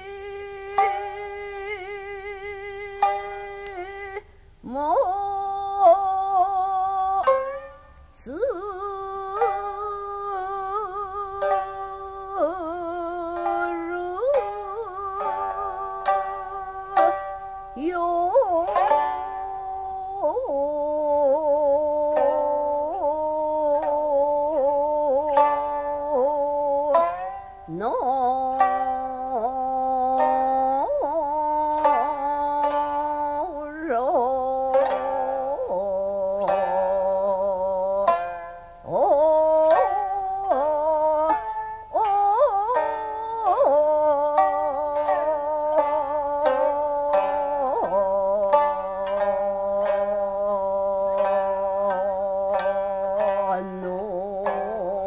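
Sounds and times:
plucked lute notes: 0:00.0 - 0:55.0
woman singing wavering phrases: 0:00.0 - 0:55.0.

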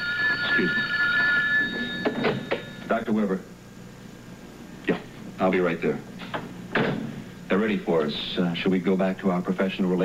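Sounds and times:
telephone ringing: 0:00.0 - 0:03.1.

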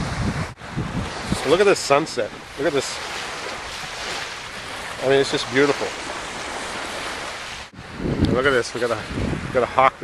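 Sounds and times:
small waves rushing: 0:00.0 - 0:09.8
wind buffeting microphone: 0:00.0 - 0:10.0.

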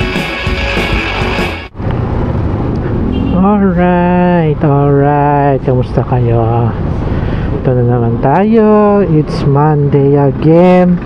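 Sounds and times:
rock music: 0:00.0 - 0:01.8.

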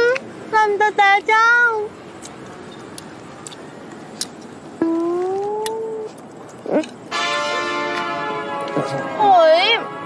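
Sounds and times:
person humming mmm: 0:04.8 - 0:06.0.

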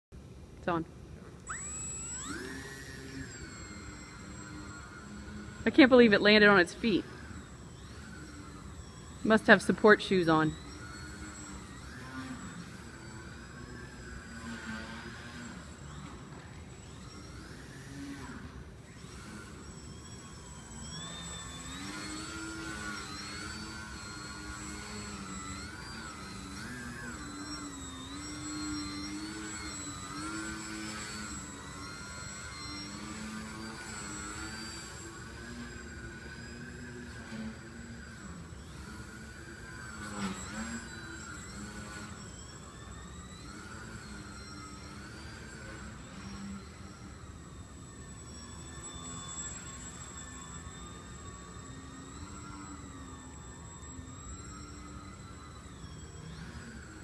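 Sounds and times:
electric motor and propeller whine: 0:00.2 - 0:57.0.

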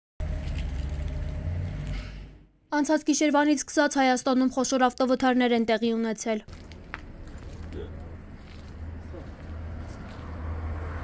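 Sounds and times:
vehicle engine idling: 0:06.5 - 0:10.4.

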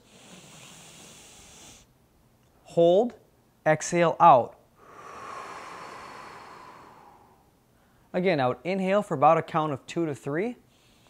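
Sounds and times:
man breathing in through nose: 0:00.0 - 0:01.9, 0:04.8 - 0:08.1, 0:10.7 - 0:11.0.

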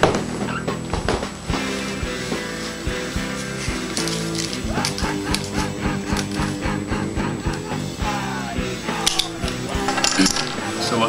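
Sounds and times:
background music: 0:00.0 - 0:11.0
poker chips clattering on table: 0:09.1 - 0:10.8.

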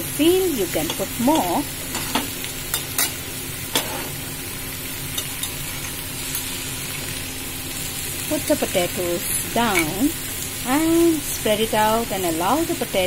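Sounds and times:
vegetables sizzling in oil: 0:00.0 - 0:13.0.

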